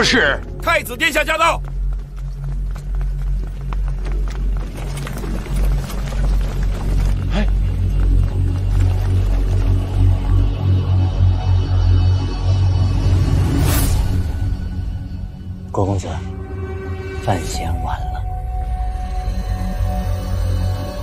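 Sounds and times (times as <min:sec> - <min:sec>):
deep low drone: 0:01.7 - 0:21.0.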